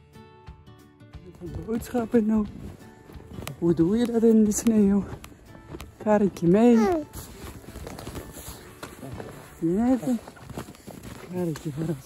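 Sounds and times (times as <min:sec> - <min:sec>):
footsteps crunching through snow: 0:01.3 - 0:12.0.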